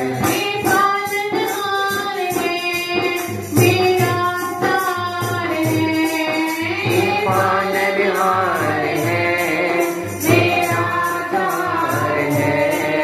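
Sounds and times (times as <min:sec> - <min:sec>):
hand drum steady beat: 0:00.0 - 0:13.0
woman singing devotional song: 0:00.0 - 0:13.0.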